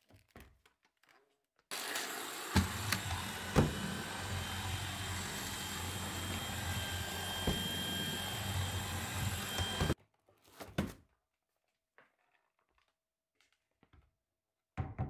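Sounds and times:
stick vacuum whining: 1.7s - 10.0s.

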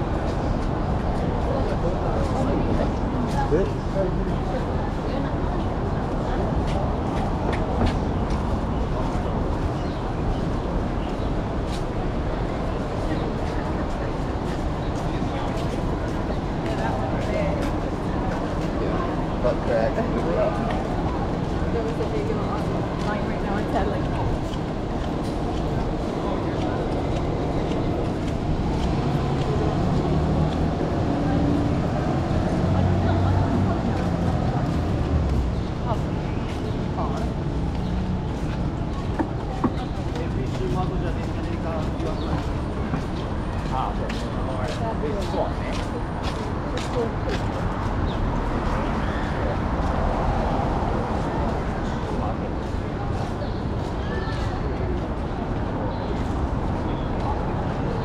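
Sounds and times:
passers-by talking: 0.0s - 58.0s
traffic: 0.0s - 58.0s.

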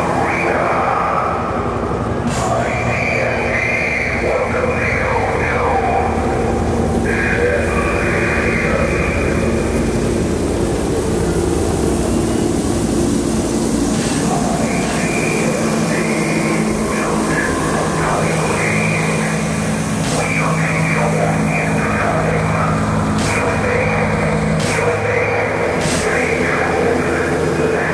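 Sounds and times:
low synthesizer drone: 0.0s - 27.9s
wavering voice-like sounds: 0.0s - 27.9s.

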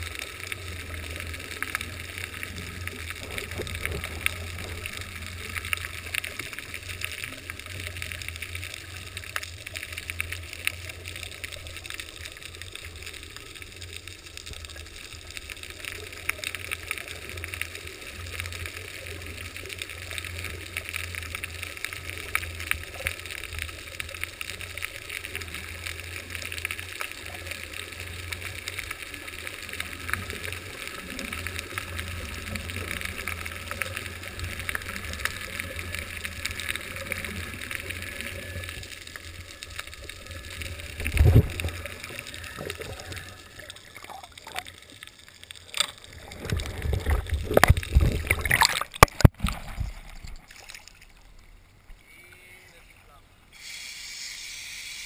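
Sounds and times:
underwater hiss with crackling: 0.0s - 49.3s, 53.5s - 55.0s.

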